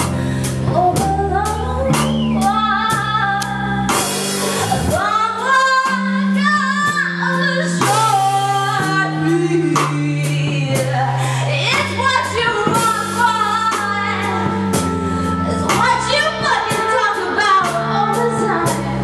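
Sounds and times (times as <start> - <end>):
guitar: 0.0 - 19.0
low bass line: 0.0 - 19.0
woman singing: 0.7 - 19.0
trumpet playing: 12.0 - 19.0.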